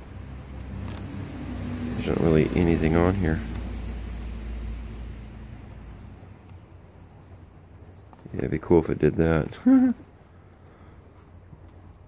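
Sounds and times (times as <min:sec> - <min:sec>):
low rumble: 0:00.0 - 0:06.8.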